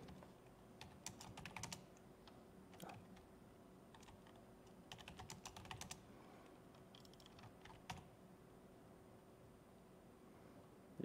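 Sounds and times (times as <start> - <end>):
faint laptop keyboard typing: 0.0 - 3.3, 3.9 - 8.1.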